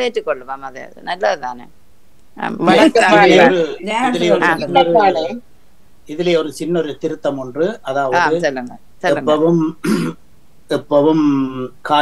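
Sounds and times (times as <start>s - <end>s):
speech over video call: 0.0s - 1.7s, 2.4s - 5.4s, 6.1s - 10.1s, 10.7s - 12.0s.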